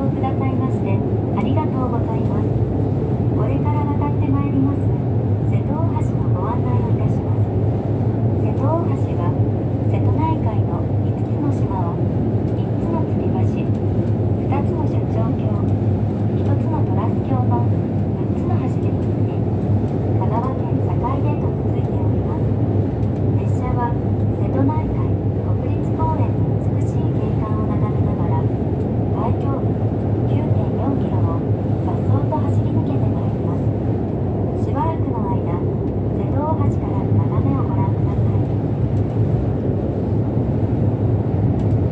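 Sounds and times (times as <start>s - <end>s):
train rumbling over bridge: 0.0s - 41.9s.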